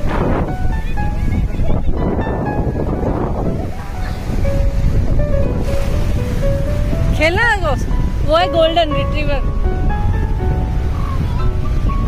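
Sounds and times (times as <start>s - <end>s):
background music melody: 0.0s - 12.0s
sea surf washing in: 0.0s - 12.0s
wind buffeting microphone: 0.0s - 12.0s.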